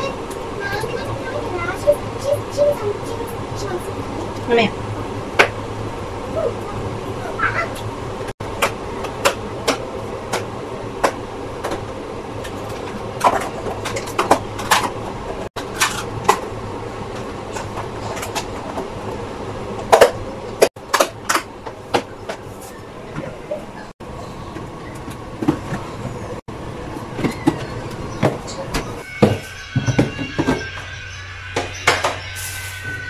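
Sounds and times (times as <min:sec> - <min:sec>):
steady background hum: 0:00.0 - 0:33.0.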